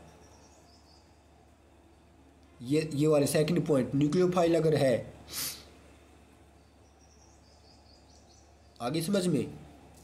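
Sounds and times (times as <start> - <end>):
faint bird chirping: 0.0 - 10.0.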